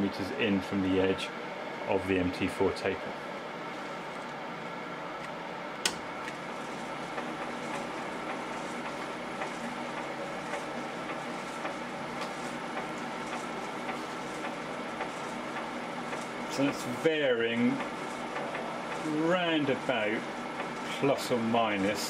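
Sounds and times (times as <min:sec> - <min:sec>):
lathe motor hum: 0:03.3 - 0:22.0
lathe switch click: 0:05.2 - 0:06.1.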